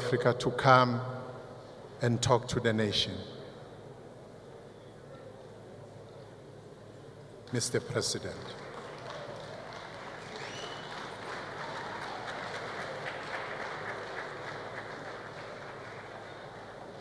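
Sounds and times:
audience applauding: 0:08.5 - 0:17.0
high rising whistle or cry: 0:10.4 - 0:10.9.

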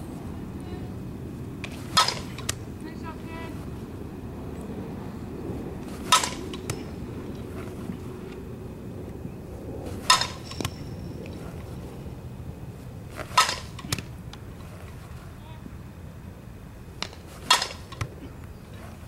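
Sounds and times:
low steady rumble: 0:00.0 - 0:19.0
bat cracking ball: 0:01.6 - 0:02.7, 0:05.8 - 0:08.0, 0:09.9 - 0:11.8, 0:13.1 - 0:15.0, 0:17.0 - 0:18.2.

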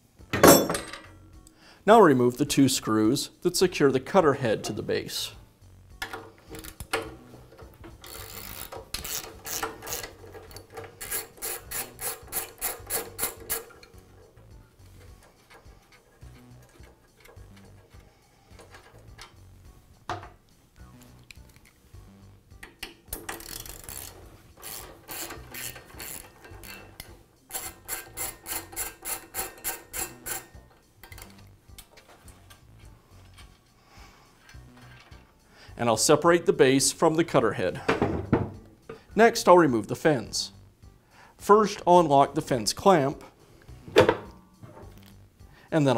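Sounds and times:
ratchet wrench clicking: 0:06.0 - 0:19.5, 0:22.6 - 0:31.9.

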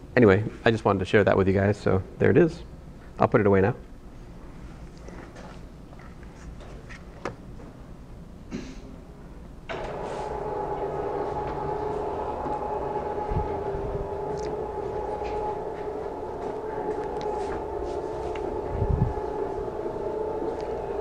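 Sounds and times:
screen motor humming: 0:09.7 - 0:21.0.

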